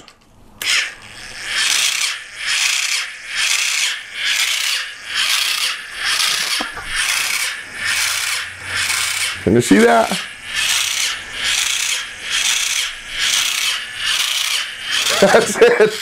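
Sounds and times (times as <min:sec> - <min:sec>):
small electric motor whirring: 0:00.6 - 0:16.0.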